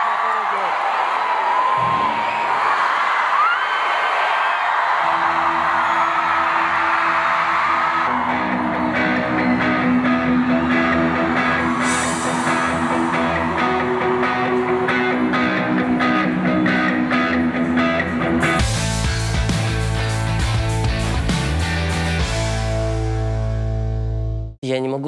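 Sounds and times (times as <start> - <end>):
crowd cheering and whistling: 0.0 - 22.4
guitar picking notes: 8.1 - 24.5.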